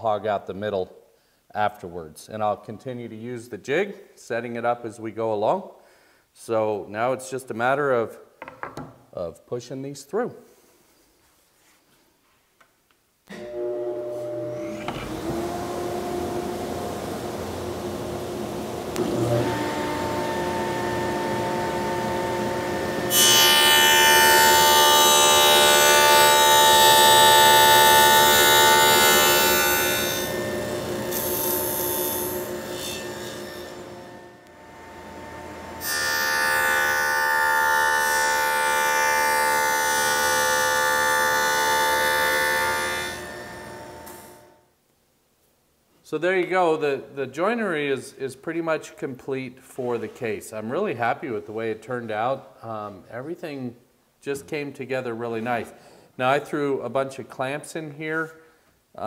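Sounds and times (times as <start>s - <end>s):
table saw cutting wood: 13.3s - 44.5s.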